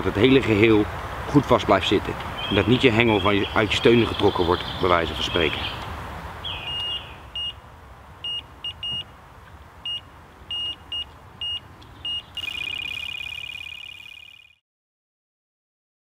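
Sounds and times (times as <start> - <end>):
electronic alarm bleeps: 6.7 - 7.6, 8.2 - 9.0, 9.8 - 14.6.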